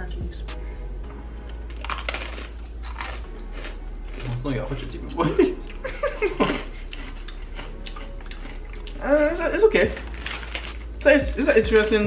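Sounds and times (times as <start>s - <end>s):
plastic snack packet crinkling: 10.0s - 10.9s.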